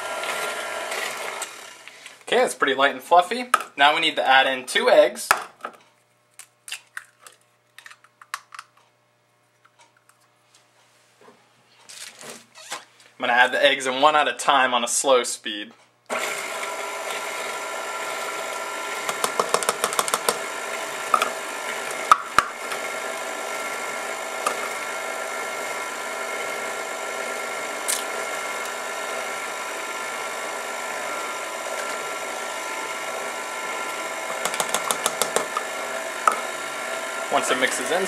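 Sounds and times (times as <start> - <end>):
stand mixer motor running: 0.0 - 2.0, 16.1 - 38.0.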